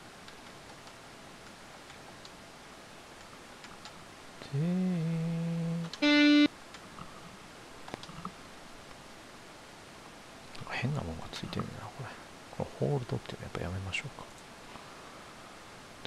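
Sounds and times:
synthesized guitar notes: 4.7 - 6.5.

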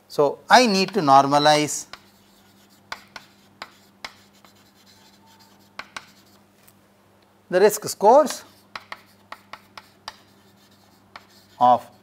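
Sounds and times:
faint steady hum: 0.0 - 12.0
chalk tapping and scratching: 0.6 - 6.4, 8.2 - 12.0.

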